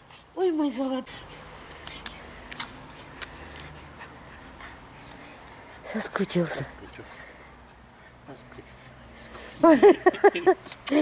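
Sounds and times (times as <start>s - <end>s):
dog panting and whimpering: 0.0s - 6.6s.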